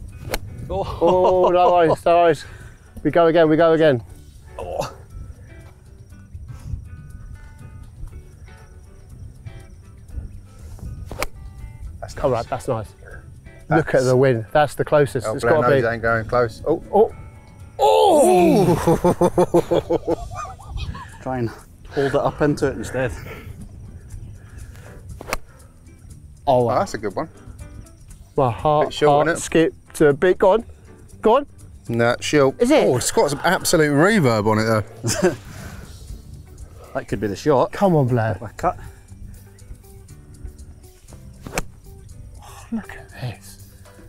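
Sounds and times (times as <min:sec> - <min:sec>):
wind rumble on microphone: 0:00.0 - 0:01.5, 0:05.1 - 0:12.2, 0:19.7 - 0:25.6
golf club striking ball: 0:00.2 - 0:00.6, 0:11.1 - 0:11.4, 0:25.2 - 0:25.6, 0:41.2 - 0:42.0.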